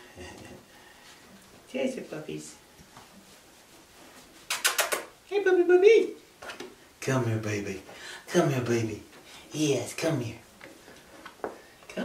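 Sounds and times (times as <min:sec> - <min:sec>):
squeaky kissing noises: 0:04.5 - 0:05.2.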